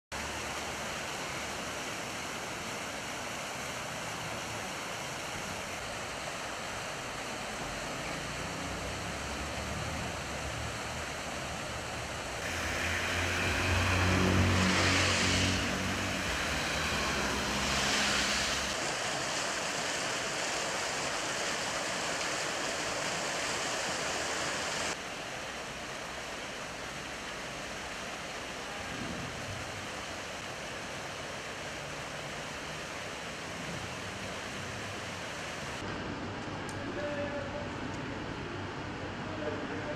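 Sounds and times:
fountain jets splashing: 0.1 - 35.9
vehicle passing rumble: 7.6 - 18.8.

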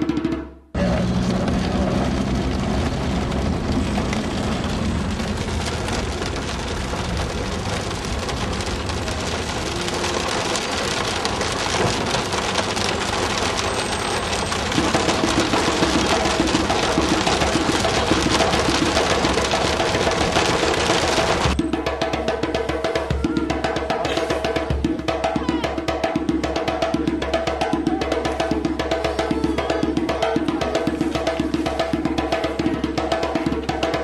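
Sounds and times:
vehicle driving rumble: 0.8 - 21.6
rain drumming on car roof: 0.8 - 34.0.

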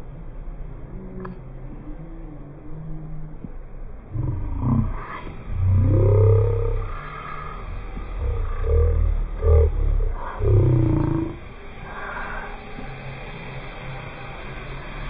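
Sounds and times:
deep pitched growls: 0.6 - 15.0.

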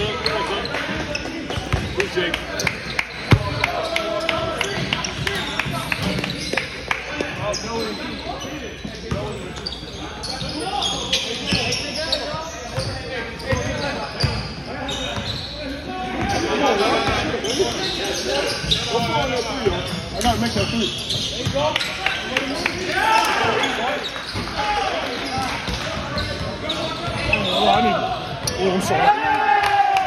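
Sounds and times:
echoing voices in a hall: 0.0 - 30.0.

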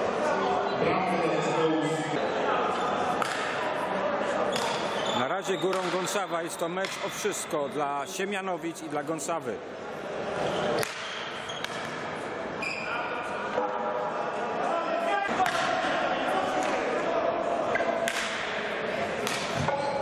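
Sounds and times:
players calling and shouting: 0.0 - 20.0
hockey sticks striking ball: 3.2 - 3.6, 4.5 - 5.0, 5.6 - 6.2, 6.8 - 7.3, 10.7 - 12.1, 15.3 - 15.8, 17.7 - 18.6, 19.2 - 20.0.

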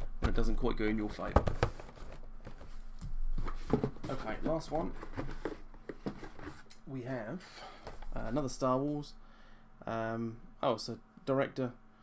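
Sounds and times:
cardboard box rustling and knocks: 1.3 - 6.6.

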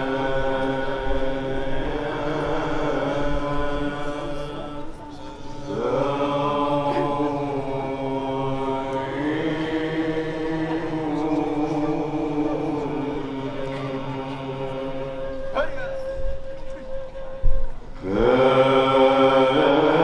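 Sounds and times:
men chanting: 0.0 - 15.5, 18.0 - 20.0.

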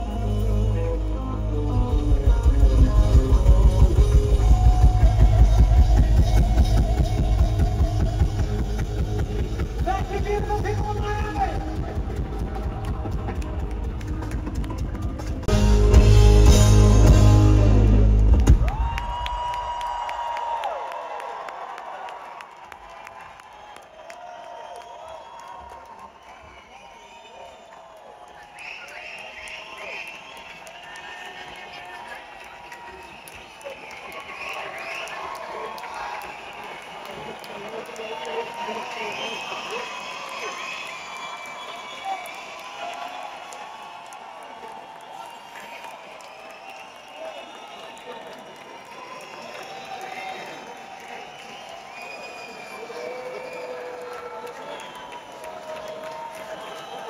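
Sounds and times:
rock band playing: 0.0 - 18.8
audience cheering and whistling: 0.0 - 57.0.

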